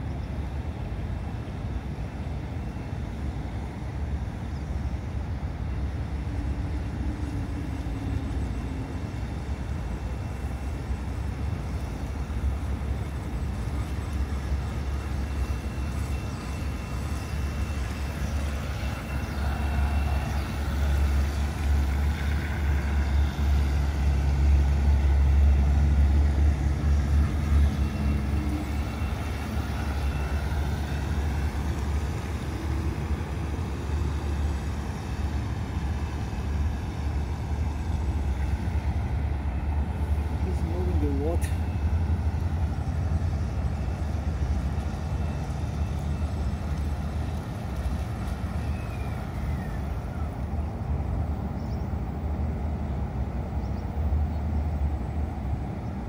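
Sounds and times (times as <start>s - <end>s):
low outdoor rumble: 0.0s - 56.0s.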